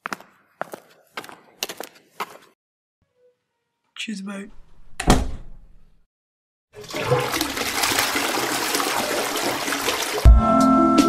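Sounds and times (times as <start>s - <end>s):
toilet flushing: 6.8s - 10.3s.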